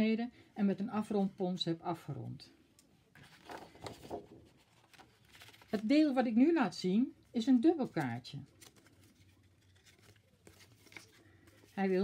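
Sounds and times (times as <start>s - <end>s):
paper cards rustling and sliding: 3.1s - 6.1s, 7.8s - 12.0s.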